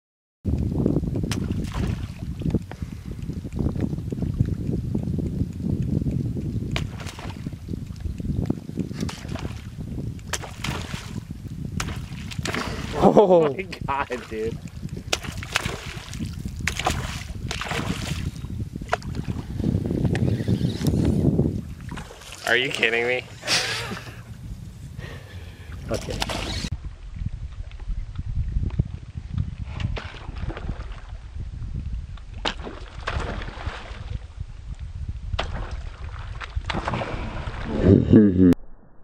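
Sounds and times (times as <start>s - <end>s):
wind buffeting microphone: 0.5s - 38.2s.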